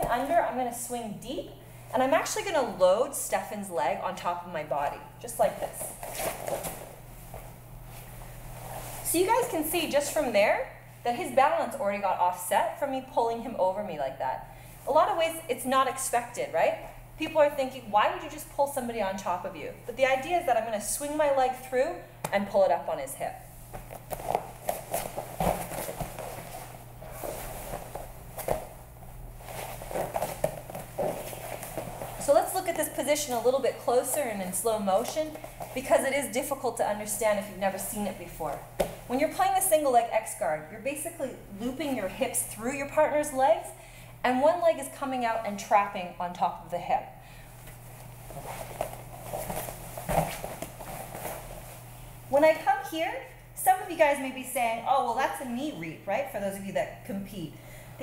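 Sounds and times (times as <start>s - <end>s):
cloth rustling: 5.7s - 9.2s, 23.5s - 35.9s, 47.6s - 52.2s
bodies thumping on foam mats: 23.7s - 28.8s, 29.5s - 32.4s, 38.8s - 39.1s, 48.3s - 51.7s.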